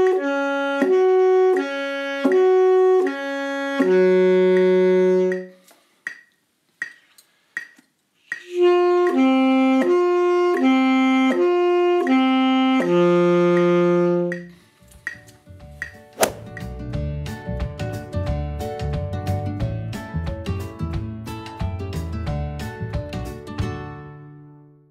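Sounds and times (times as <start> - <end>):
saxophone playing: 0.0 - 5.7, 8.4 - 14.6
background music with bass line: 7.6 - 24.2.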